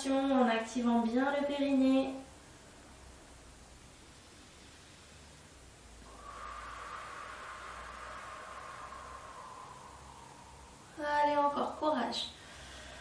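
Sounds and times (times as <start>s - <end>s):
woman exhaling through mouth: 6.0s - 13.0s.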